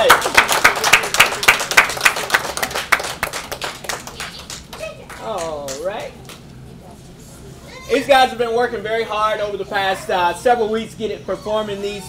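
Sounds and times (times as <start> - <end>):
audience applauding: 0.0 - 5.8.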